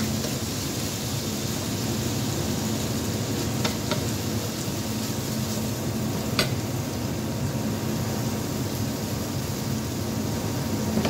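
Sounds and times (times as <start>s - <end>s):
low ventilation hum: 0.0s - 11.0s
meat sizzling in a pan: 0.0s - 11.0s.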